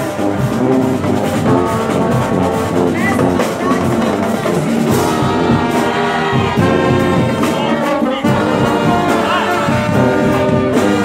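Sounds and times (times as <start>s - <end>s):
brass section playing: 0.0s - 11.0s
drums: 0.0s - 11.0s.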